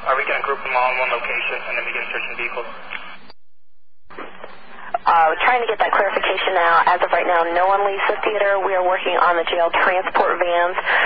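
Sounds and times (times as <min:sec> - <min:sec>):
radio static: 0:00.1 - 0:03.3, 0:04.1 - 0:11.0.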